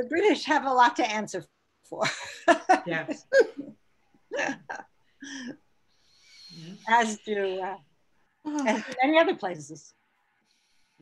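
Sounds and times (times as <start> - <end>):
person speaking on video call: 0.0 - 3.7, 6.3 - 10.0.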